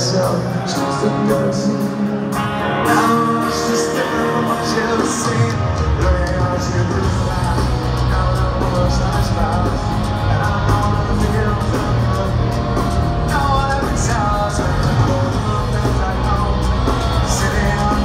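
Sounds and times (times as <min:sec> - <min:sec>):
live rock band: 0:00.0 - 0:18.0
person singing: 0:00.0 - 0:18.0.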